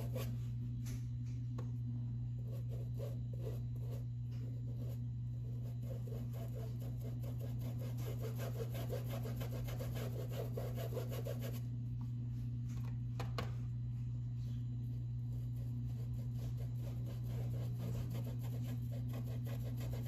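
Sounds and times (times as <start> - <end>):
steady low hum: 0.0 - 20.0
paintbrush rubbing on fabric: 2.4 - 11.7, 14.9 - 20.0.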